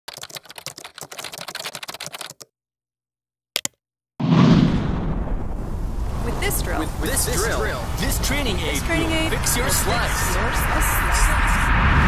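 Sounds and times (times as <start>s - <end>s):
rapid keyboard typing: 0.1s - 2.5s
loud rush of noise: 7.6s - 12.0s.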